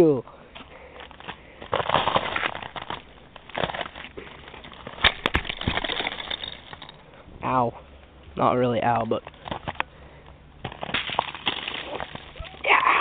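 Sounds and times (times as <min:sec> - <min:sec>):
snow and twigs crunching: 0:01.1 - 0:06.6.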